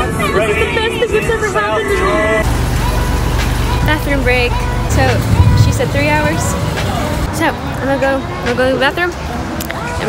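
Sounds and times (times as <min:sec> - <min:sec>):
low vehicle rumble: 0:02.4 - 0:07.4.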